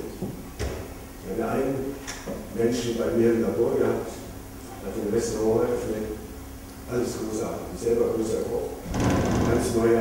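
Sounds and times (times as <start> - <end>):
man lecturing into a microphone: 9.4 - 10.0.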